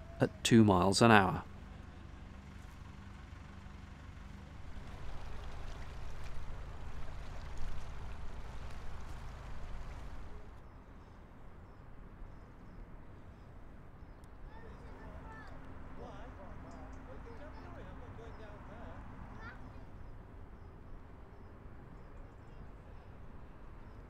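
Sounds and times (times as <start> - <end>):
diesel engine humming: 0.0 - 10.6.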